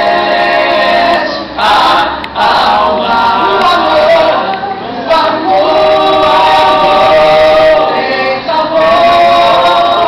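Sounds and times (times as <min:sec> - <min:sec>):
vocal jazz ensemble singing chords: 0:00.0 - 0:10.0.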